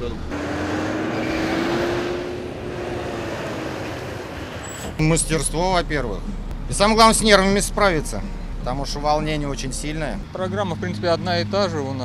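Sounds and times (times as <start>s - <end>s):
bus engine whine: 0.0s - 10.6s
bus running noise: 0.0s - 12.0s.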